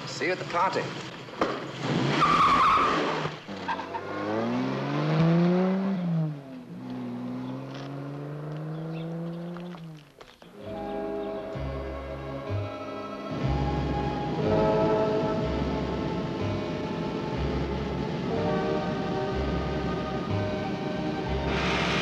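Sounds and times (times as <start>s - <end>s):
car engine revving: 1.0s - 10.2s
music: 10.5s - 22.0s.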